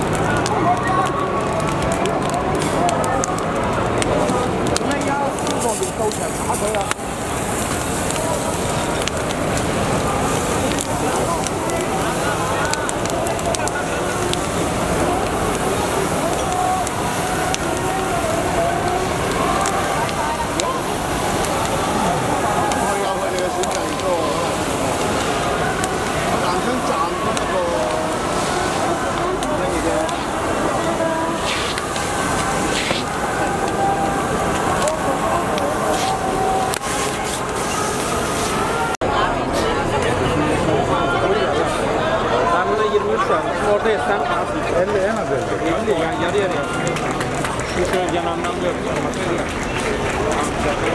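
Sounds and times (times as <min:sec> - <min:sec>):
burning wood crackling: 0:00.0 - 0:39.0, 0:41.5 - 0:50.9
crowd voices talking and calling: 0:00.0 - 0:50.9.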